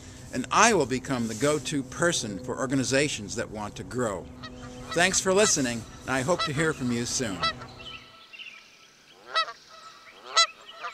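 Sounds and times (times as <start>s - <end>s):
goose honking: 4.4s - 8.2s, 9.2s - 10.9s.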